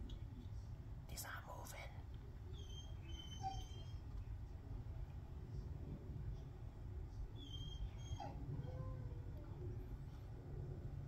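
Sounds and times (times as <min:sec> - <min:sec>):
low steady rumble: 0:00.0 - 0:11.0
soft whispering: 0:00.2 - 0:02.2.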